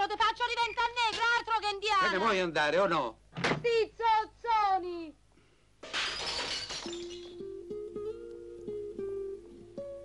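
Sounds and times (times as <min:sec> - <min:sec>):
glass shards rattling: 0:05.8 - 0:07.4
glass breaking: 0:05.8 - 0:07.5.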